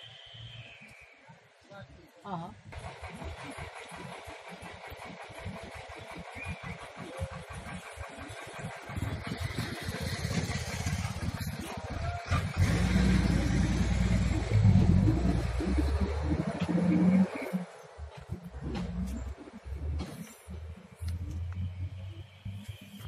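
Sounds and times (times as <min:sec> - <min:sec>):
vehicle engine: 0:02.7 - 0:23.0.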